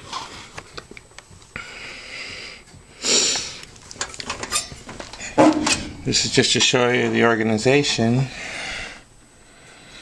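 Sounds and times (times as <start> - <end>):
metal drawer rattling: 4.0 - 6.7.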